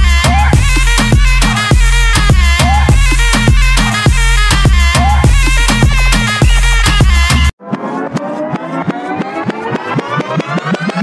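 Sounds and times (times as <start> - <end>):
rising gliding tones: 7.6 - 11.0.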